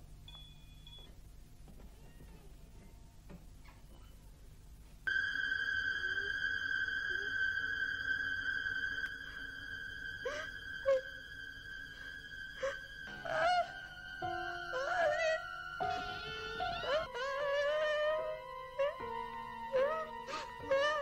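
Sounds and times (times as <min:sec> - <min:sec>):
high held note: 0:05.1 - 0:16.7.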